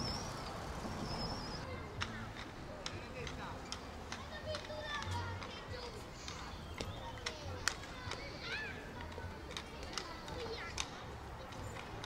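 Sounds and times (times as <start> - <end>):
distant children playing: 0.0 - 12.0.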